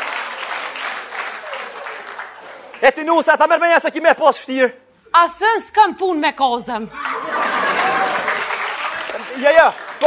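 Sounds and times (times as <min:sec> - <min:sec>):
audience applauding: 0:00.0 - 0:03.0, 0:07.0 - 0:10.0.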